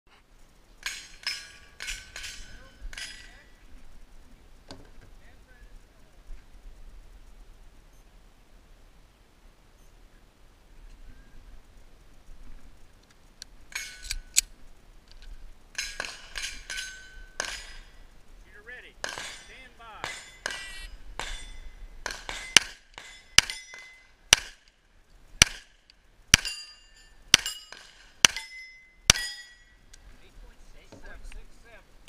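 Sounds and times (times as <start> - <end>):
steel plate clanging and ringing: 0.8 - 3.6, 13.7 - 14.2, 15.7 - 18.1, 19.0 - 24.6, 26.3 - 29.9
pistol shots: 19.0 - 24.7, 25.4 - 26.6.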